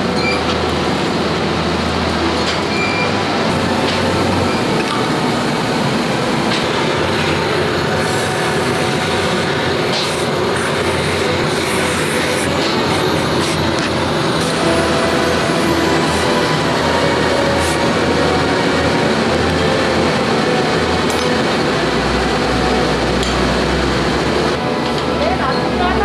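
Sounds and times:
factory machinery noise: 0.0s - 26.0s.

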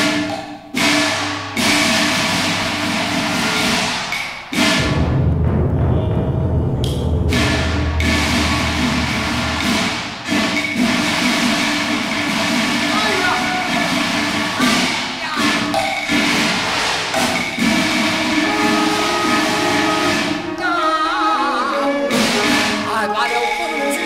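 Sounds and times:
opera ensemble accompaniment: 0.0s - 24.0s
percussion strikes: 0.0s - 24.0s
indistinct voices: 12.8s - 24.0s.

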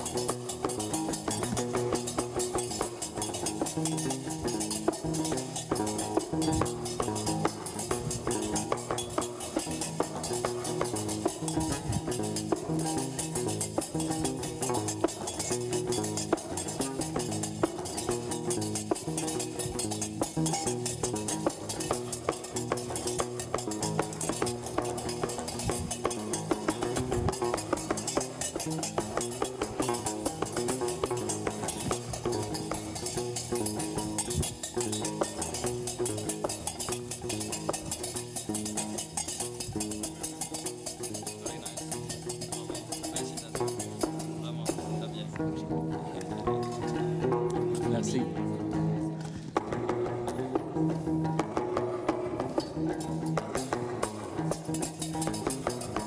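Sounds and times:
iron castanets clattering: 0.0s - 44.7s, 53.0s - 56.0s
plucked bass lute: 0.0s - 56.0s.

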